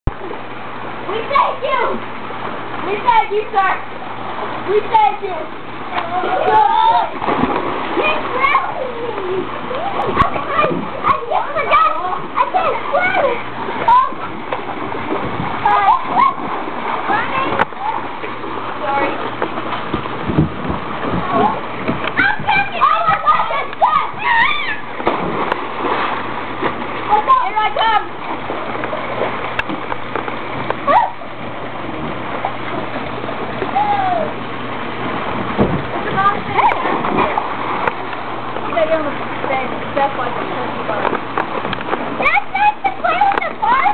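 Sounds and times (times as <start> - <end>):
water splashing in pool: 0.1 - 43.9
children shouting: 6.0 - 7.2, 8.0 - 14.3, 15.6 - 16.5, 22.2 - 24.9, 30.9 - 31.3, 33.7 - 34.4.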